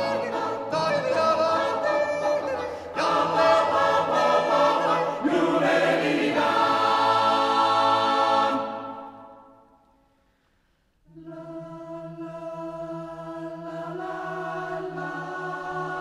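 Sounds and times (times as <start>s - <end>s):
choir singing a cappella: 0.0s - 9.8s, 11.1s - 16.0s.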